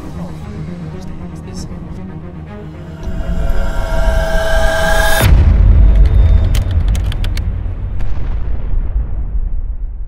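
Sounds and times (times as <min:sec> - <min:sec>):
deep cinematic boom: 0:02.8 - 0:06.6.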